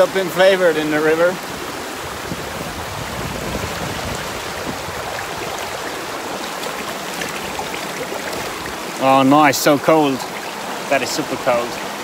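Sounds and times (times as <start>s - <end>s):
mountain stream flowing: 0.0s - 12.0s.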